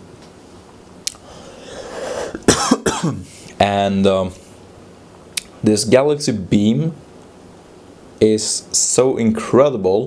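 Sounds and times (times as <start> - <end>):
breath in: 1.2 - 2.4
man coughing: 2.2 - 3.3.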